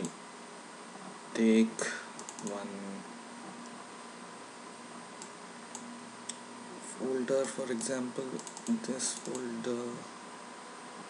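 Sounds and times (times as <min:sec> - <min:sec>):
faint background noise: 0:00.0 - 0:11.0
computer mouse clicks: 0:02.2 - 0:02.6, 0:05.2 - 0:06.4, 0:07.4 - 0:09.6.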